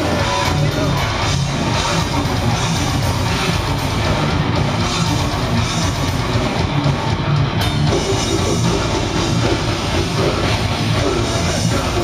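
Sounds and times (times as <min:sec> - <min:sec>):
distorted guitars and bass: 0:00.0 - 0:12.0
fast drums: 0:00.0 - 0:12.0.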